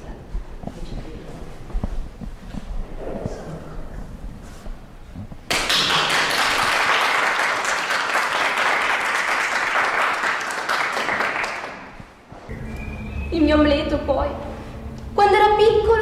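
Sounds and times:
audience applauding: 0:05.5 - 0:12.2.

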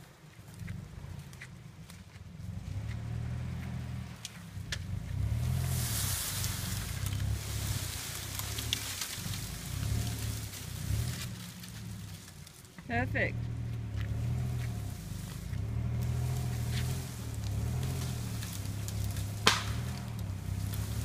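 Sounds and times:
branches scraping and crackling: 0:00.0 - 0:21.0
vehicle engine running under load: 0:00.0 - 0:21.0.

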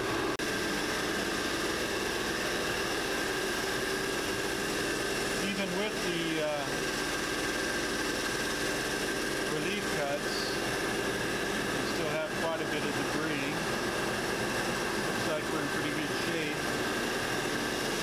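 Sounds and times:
vacuum pumps droning: 0:00.0 - 0:18.0.

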